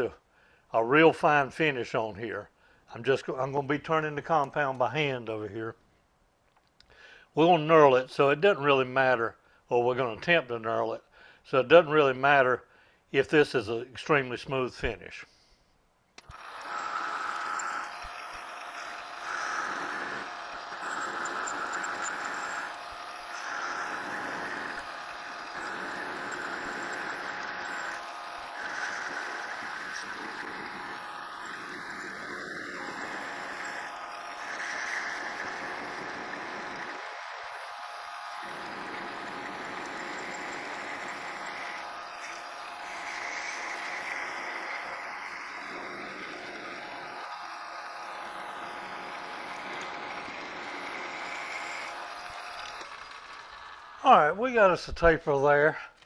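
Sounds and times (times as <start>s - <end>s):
lathe tool cutting metal: 16.2s - 54.8s
metal lathe running: 16.2s - 54.8s.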